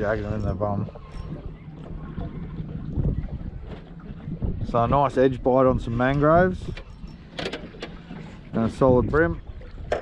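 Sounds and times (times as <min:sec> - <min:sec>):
water noise: 0:00.0 - 0:10.0
wind: 0:00.0 - 0:10.0.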